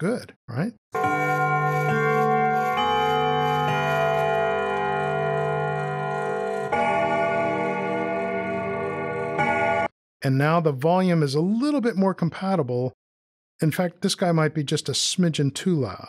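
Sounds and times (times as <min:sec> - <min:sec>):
carillon bells chiming: 0:01.0 - 0:09.9.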